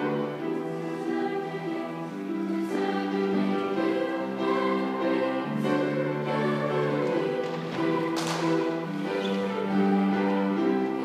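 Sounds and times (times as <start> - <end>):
accompanying music: 0.0 - 11.0
choir singing sustained chords: 0.0 - 11.0.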